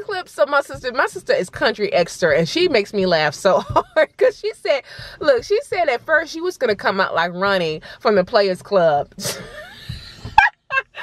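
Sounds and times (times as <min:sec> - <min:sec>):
woman laughing hard: 0:09.2 - 0:11.0.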